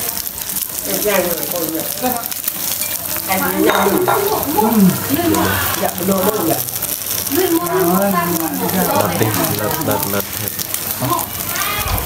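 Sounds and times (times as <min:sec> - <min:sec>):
meat sizzling on a grill pan: 0:00.0 - 0:12.0.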